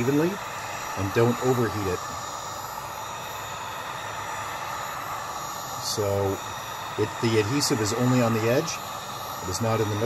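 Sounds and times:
faint high fan tones: 0:00.0 - 0:10.0
heat gun blowing air: 0:00.0 - 0:10.0.

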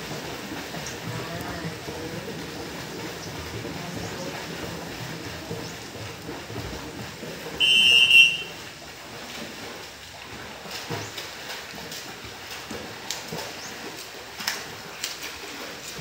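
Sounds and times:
children splashing in pool: 0:00.0 - 0:16.0.

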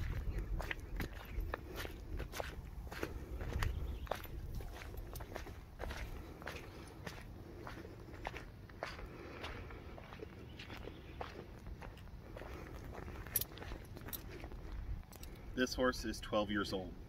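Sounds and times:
footsteps on wet mulch: 0:00.0 - 0:15.4.

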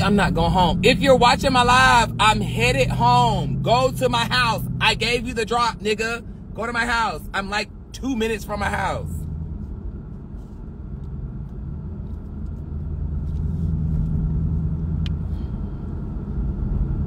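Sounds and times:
car cabin engine and road noise: 0:00.0 - 0:17.0.

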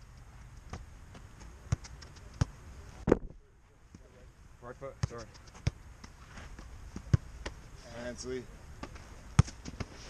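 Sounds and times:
soccer ball thuds: 0:00.7 - 0:03.3, 0:05.0 - 0:07.6, 0:08.8 - 0:10.0.

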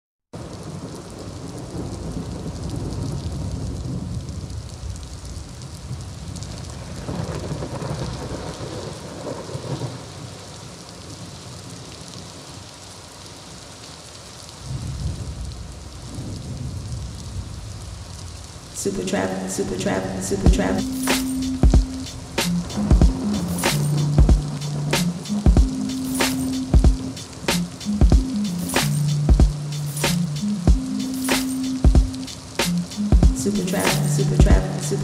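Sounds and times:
heavy rain: 0:00.4 - 0:35.0
rolling thunder: 0:00.6 - 0:10.0, 0:14.7 - 0:18.2.

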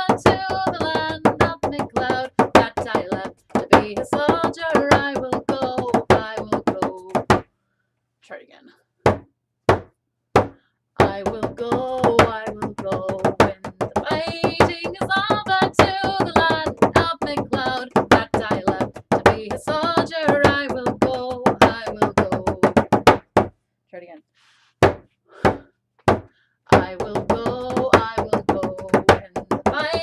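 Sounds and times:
woman singing: 0:00.0 - 0:07.3, 0:11.0 - 0:22.9, 0:26.7 - 0:30.0.

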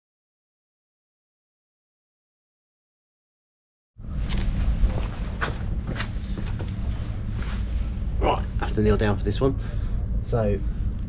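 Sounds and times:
low outdoor rumble: 0:04.0 - 0:11.0.

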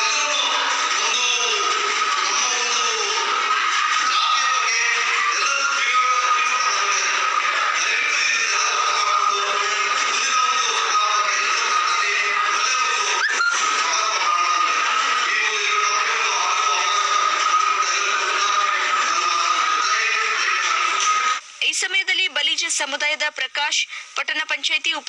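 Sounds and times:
man singing through loudspeaker: 0:00.0 - 0:21.4.

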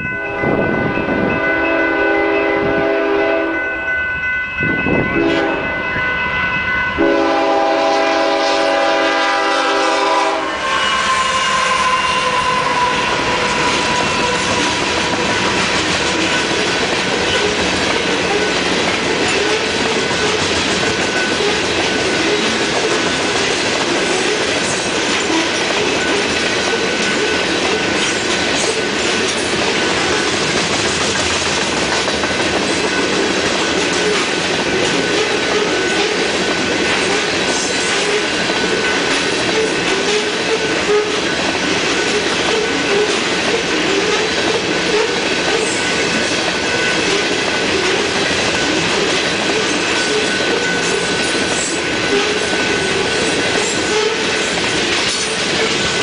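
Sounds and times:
train wheels rumbling on rails: 0:00.0 - 0:56.0
locomotive horn: 0:00.2 - 0:03.7, 0:05.1 - 0:05.8, 0:07.0 - 0:15.3, 0:40.0 - 0:41.3, 0:53.8 - 0:54.4.

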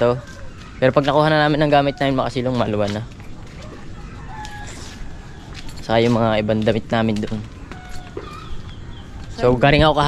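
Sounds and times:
rooster crowing: 0:00.0 - 0:02.6, 0:03.6 - 0:05.8, 0:07.6 - 0:09.4.

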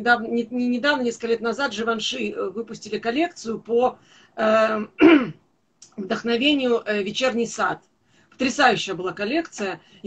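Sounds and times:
woman clearing her throat: 0:05.0 - 0:05.4.

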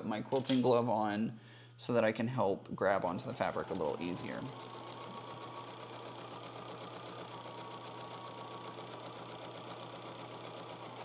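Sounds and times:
sewing machine stitching: 0:02.8 - 0:11.0.

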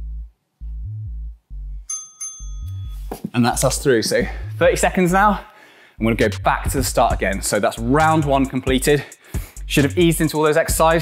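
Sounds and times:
music with repeating bass line: 0:00.0 - 0:01.9, 0:02.6 - 0:05.4, 0:06.0 - 0:11.0
timer bell ding: 0:01.9 - 0:03.1.

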